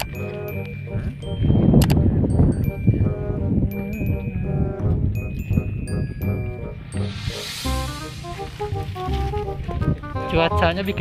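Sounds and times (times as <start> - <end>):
background music melody over bass: 0.0 - 11.0.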